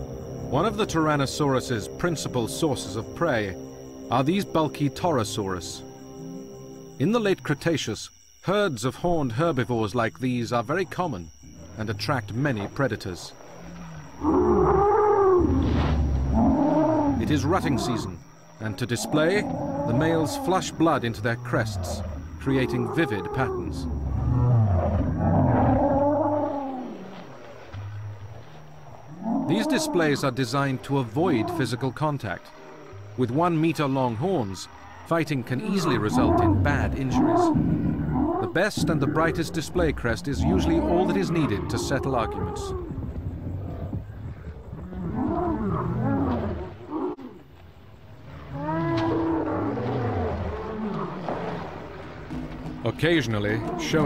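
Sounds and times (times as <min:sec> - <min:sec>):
low-pitched creature calls: 0:35.0 - 0:43.0, 0:53.2 - 0:54.0.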